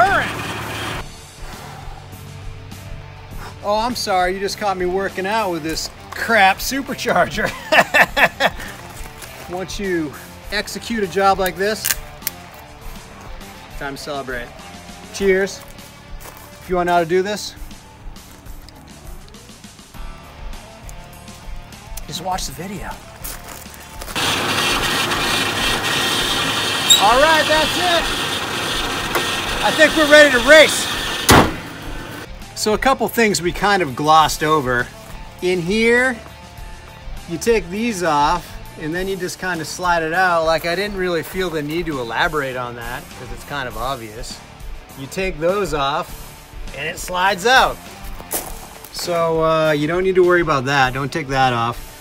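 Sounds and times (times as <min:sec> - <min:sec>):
car engine idling: 0:00.0 - 0:04.0, 0:24.0 - 0:32.3.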